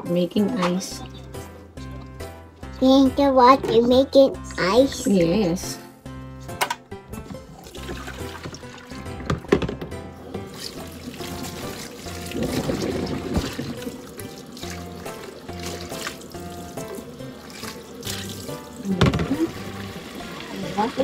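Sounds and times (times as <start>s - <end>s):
background music: 0.0s - 21.0s
tap water running into sink: 7.2s - 21.0s.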